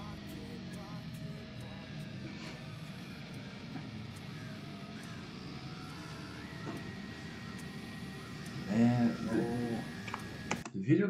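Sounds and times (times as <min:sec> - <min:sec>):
faint steady high tone: 0:00.0 - 0:10.6
low dark rumbling drone: 0:00.0 - 0:10.6.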